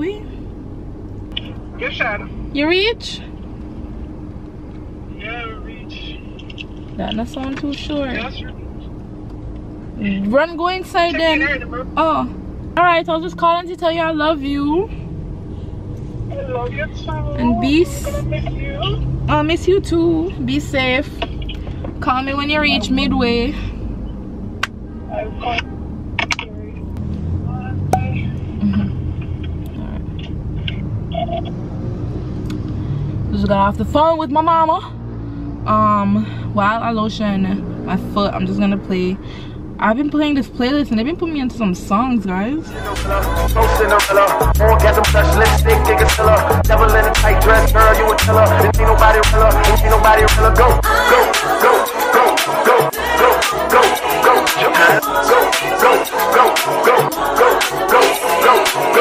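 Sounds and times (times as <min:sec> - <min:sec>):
car idling from inside cabin: 0:00.0 - 0:12.0, 0:15.6 - 0:23.8
car cabin rumble: 0:27.6 - 0:31.5
faint pitched drone: 0:42.7 - 0:59.0.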